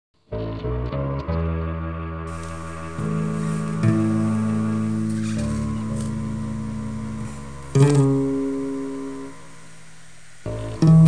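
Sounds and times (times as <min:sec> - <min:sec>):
plucked string note ringing: 0:00.4 - 0:09.7, 0:10.5 - 0:11.0.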